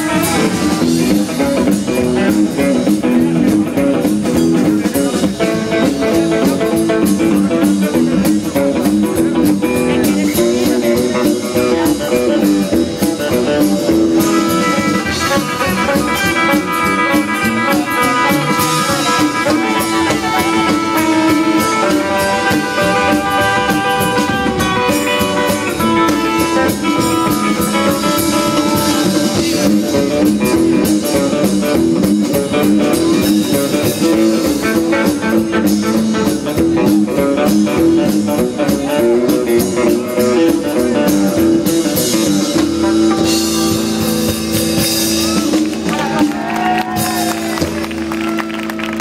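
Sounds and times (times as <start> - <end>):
rock and roll band playing: 0.0 - 49.0.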